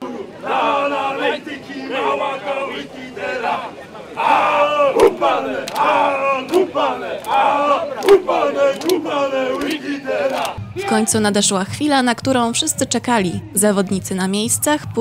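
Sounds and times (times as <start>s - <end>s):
men shouting a chant: 0.0s - 11.4s.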